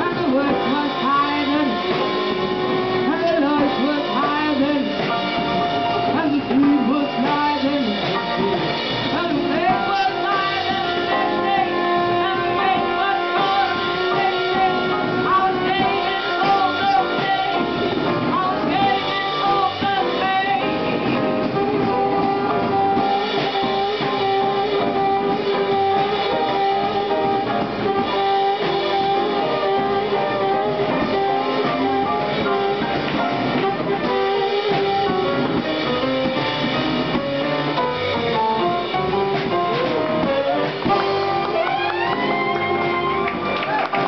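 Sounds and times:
woman singing: 0:00.0 - 0:36.0
jazz band playing: 0:00.0 - 0:44.0
saxophone: 0:00.0 - 0:44.0.

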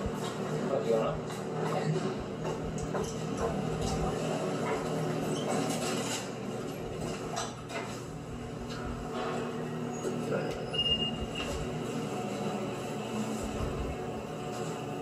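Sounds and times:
elevator mechanical hum: 0:00.0 - 0:15.0
short high beep: 0:10.7 - 0:11.5.

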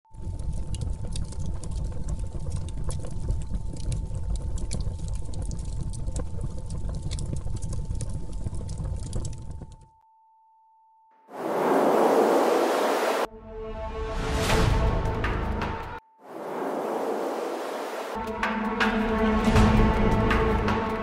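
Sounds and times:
crackling and pattering: 0:00.2 - 0:09.8.

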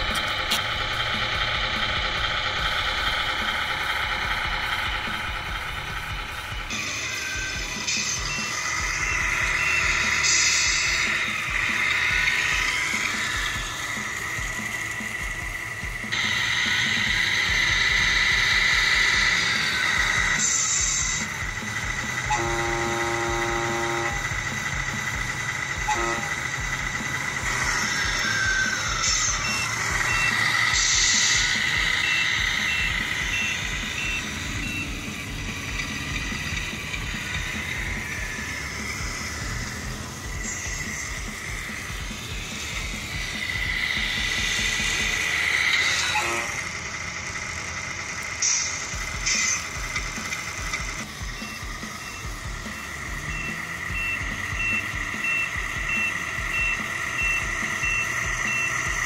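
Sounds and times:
reversing beeper: 0:00.0 - 0:47.4, 0:48.4 - 0:59.0
simulated diesel engine sound: 0:00.0 - 0:59.0.

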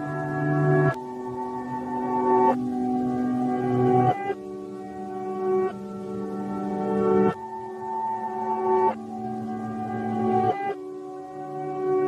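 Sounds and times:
reversed song chords: 0:00.0 - 0:12.0.

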